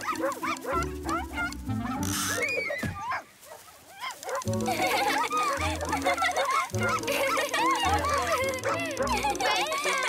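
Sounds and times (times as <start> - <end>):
cartoon puppy whimpering: 0.0 - 3.2, 4.9 - 10.0.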